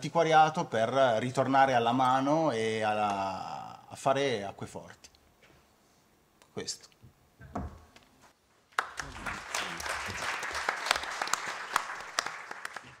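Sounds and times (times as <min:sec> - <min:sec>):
audience applauding: 0:08.7 - 0:13.0.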